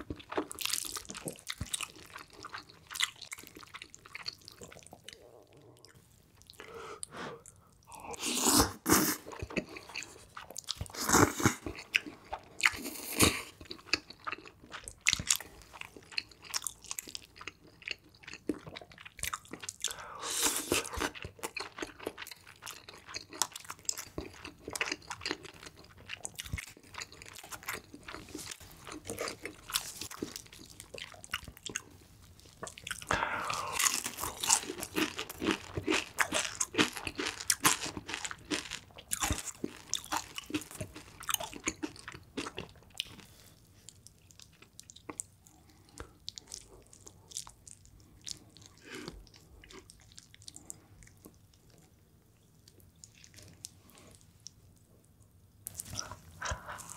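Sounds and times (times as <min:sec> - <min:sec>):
chewing with crunchy bites: 0:00.0 - 0:56.9.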